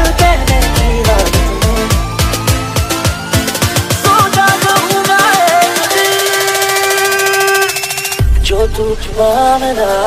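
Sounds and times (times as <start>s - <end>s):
electronic pop music: 0.0s - 10.0s.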